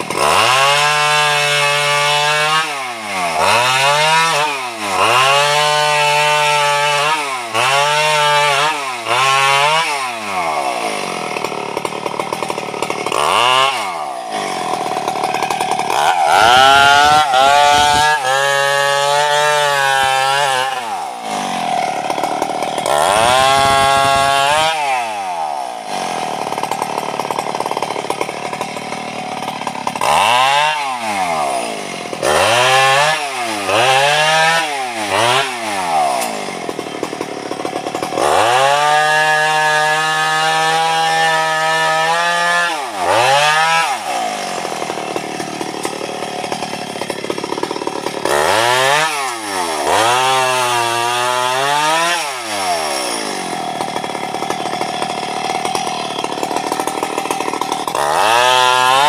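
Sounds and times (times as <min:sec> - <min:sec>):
chainsaw revving: 0:00.0 - 0:59.0.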